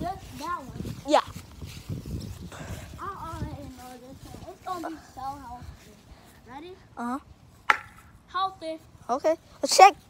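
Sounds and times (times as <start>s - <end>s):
footsteps on grass: 0.0s - 6.8s.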